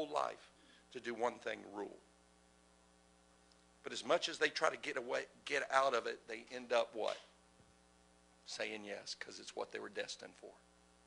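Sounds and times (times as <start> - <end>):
faint electrical mains hum: 0.0 - 11.0.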